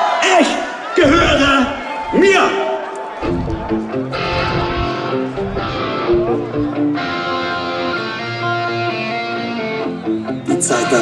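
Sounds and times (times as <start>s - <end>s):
live rock band guitars: 3.2s - 11.0s.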